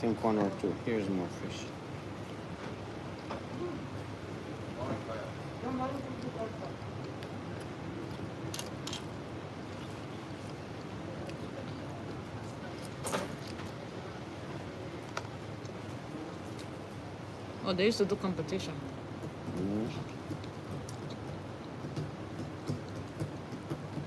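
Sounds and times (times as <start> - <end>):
restaurant murmur: 0.0 - 21.6.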